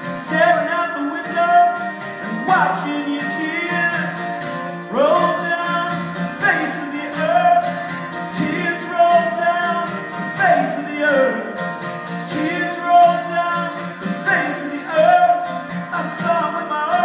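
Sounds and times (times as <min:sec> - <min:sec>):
acoustic guitar: 0:00.0 - 0:17.0
person singing wordless melody: 0:00.0 - 0:17.0.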